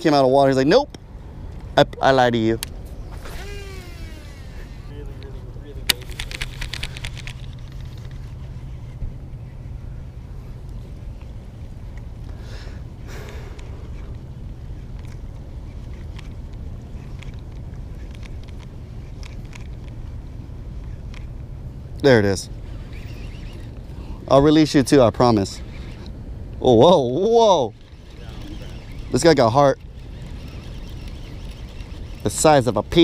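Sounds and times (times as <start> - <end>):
spool whirring: 3.0 - 10.7, 22.5 - 26.1, 26.7 - 33.0
fishing reel click: 5.9 - 8.4, 27.8 - 33.0.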